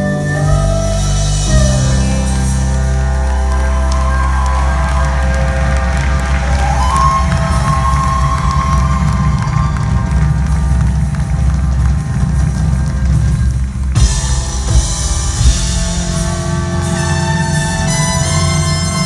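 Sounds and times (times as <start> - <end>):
live rock band: 0.0 - 19.0.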